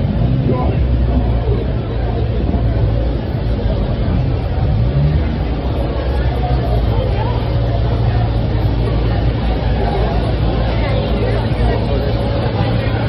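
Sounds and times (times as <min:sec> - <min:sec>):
many people talking: 0:00.0 - 0:13.0
road traffic hum: 0:00.0 - 0:13.0.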